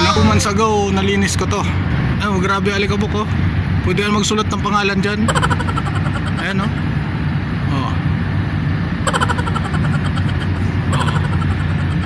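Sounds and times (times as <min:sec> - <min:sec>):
engine idling: 0:09.0 - 0:12.0.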